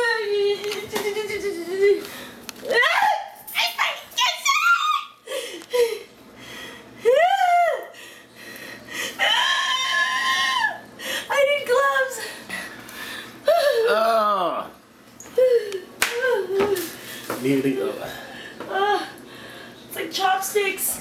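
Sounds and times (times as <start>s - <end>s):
woman squealing and shrieking: 2.6s - 5.2s, 9.2s - 10.8s.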